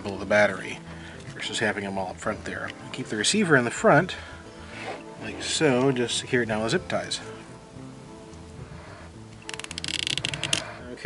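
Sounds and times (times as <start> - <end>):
zip tie ratchet clicks: 9.3 - 10.8.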